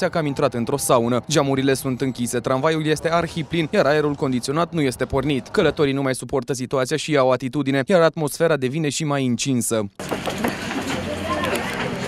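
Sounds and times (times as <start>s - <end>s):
tram interior din: 10.0s - 12.0s
indistinct voices talking: 10.1s - 12.0s.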